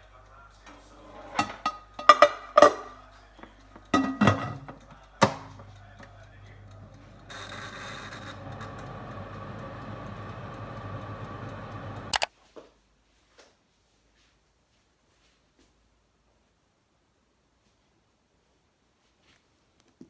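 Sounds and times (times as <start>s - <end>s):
oven fan humming: 0.0s - 12.2s
metal cake pan clattering: 1.1s - 3.0s, 4.0s - 5.5s.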